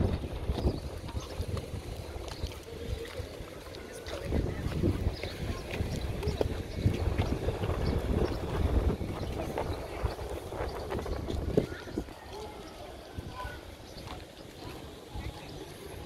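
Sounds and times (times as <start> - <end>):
footsteps on pavement: 0.0 - 16.0
wind buffeting microphone: 0.0 - 16.0.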